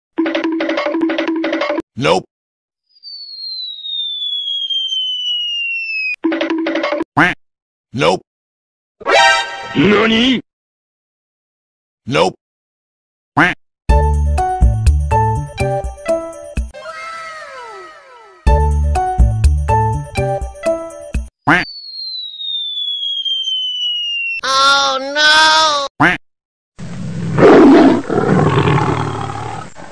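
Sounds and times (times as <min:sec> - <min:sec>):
cartoon falling whistle: 0:02.9 - 0:06.2, 0:21.5 - 0:25.7
jingly cartoon music: 0:09.0 - 0:10.1, 0:13.9 - 0:21.8.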